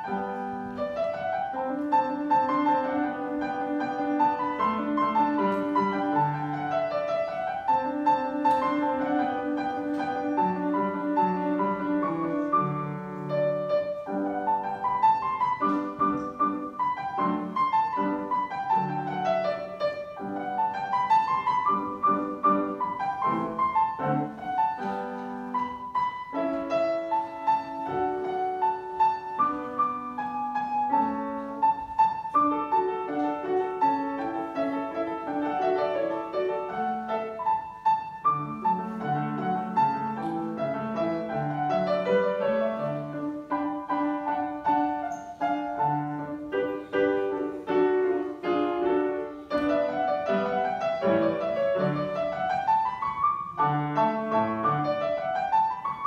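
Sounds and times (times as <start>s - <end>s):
solo grand piano: 0.0s - 56.0s.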